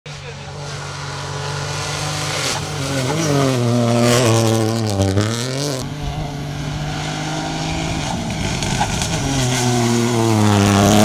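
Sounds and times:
rally car engine at high revs: 0.1 - 11.0.

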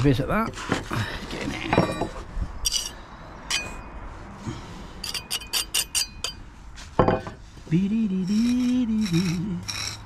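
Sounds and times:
metal tool clinking on brick: 1.7 - 3.9, 5.0 - 6.4.

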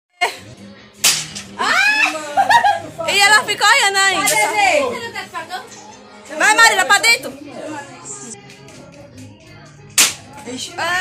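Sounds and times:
sharp slaps: 1.0 - 1.4, 10.0 - 10.3.

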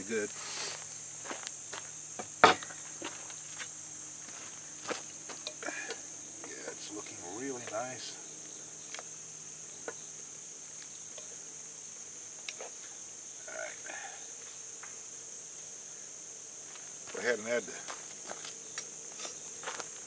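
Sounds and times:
insects calling: 0.0 - 20.0.

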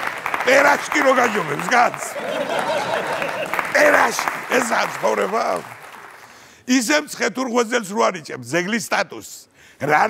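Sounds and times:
studio audience applauding: 0.0 - 6.5
man speaking: 0.4 - 2.3, 3.7 - 5.7, 6.7 - 10.0.

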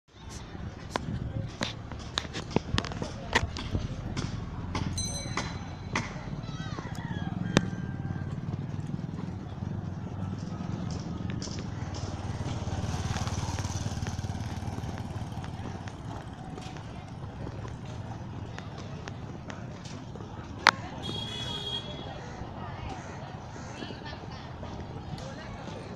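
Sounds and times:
low traffic rumble: 0.1 - 25.9
distant voices: 0.2 - 25.9
vehicle passing: 1.8 - 25.9.

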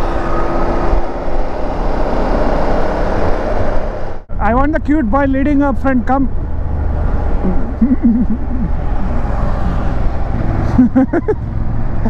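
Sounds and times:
motorcycle engine cruising: 5.0 - 12.0
person laughing: 7.4 - 9.2, 10.5 - 11.4.

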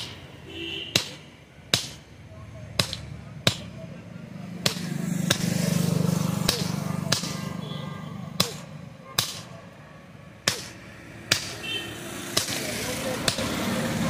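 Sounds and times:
hammer striking metal on anvil: 0.9 - 2.1, 2.8 - 3.8, 4.6 - 5.7, 6.4 - 7.5, 12.3 - 12.6.

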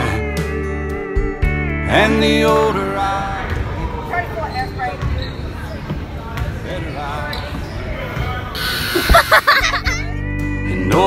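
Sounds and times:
echoing voices and chatter: 2.4 - 9.7.

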